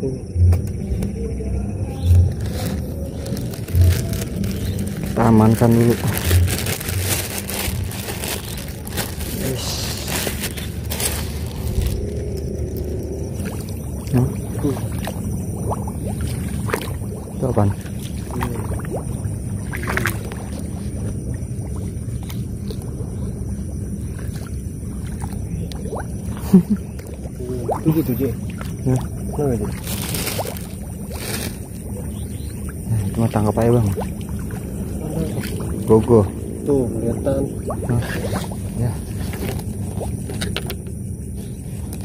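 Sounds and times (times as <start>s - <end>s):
legs wading through water: 1.7s - 42.0s
plastic bag rustling: 2.2s - 13.0s, 29.7s - 32.5s.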